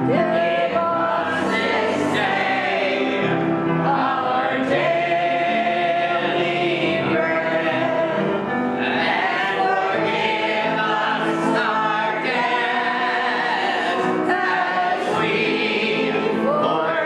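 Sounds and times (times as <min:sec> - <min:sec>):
congregation singing: 0:00.0 - 0:17.0.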